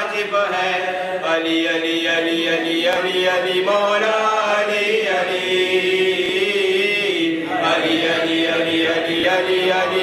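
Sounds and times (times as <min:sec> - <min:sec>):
man chanting unaccompanied: 0:00.0 - 0:10.0.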